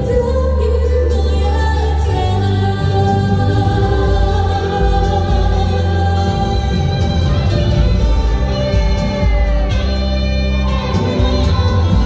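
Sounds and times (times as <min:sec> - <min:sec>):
backing track music: 0:00.0 - 0:12.0
woman singing into a microphone: 0:00.0 - 0:12.0.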